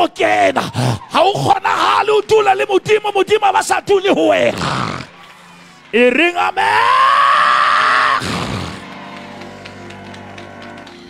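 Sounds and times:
hand claps: 8.2 - 11.0.

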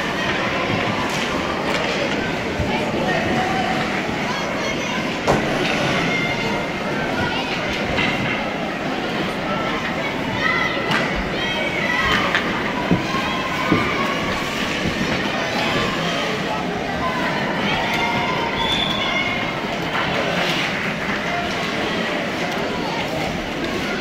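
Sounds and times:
distant voices and shouts: 0.0 - 24.0.

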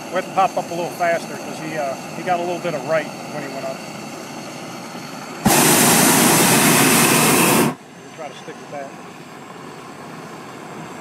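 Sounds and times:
propane burner roaring: 0.0 - 11.0.

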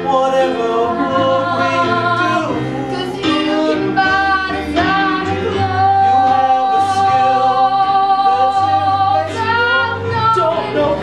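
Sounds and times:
low musical accompaniment: 0.0 - 11.0
woman singing: 2.9 - 11.0.

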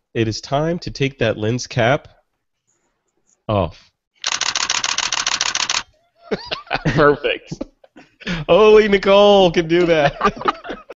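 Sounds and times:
camera shutter burst: 4.2 - 5.9.

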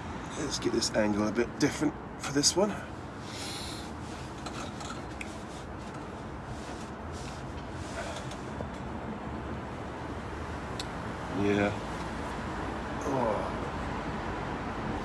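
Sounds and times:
city traffic hum: 0.0 - 15.0.

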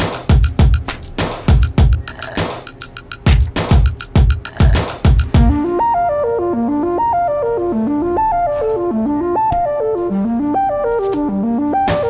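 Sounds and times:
electronic keyboard riff: 1.5 - 12.0.

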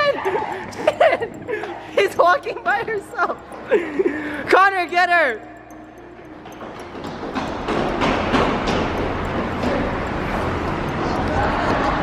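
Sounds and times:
irregular knocks: 5.7 - 11.0.

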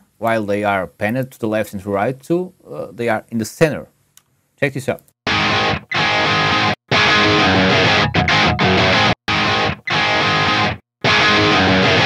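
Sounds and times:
electric guitar: 5.3 - 12.0.

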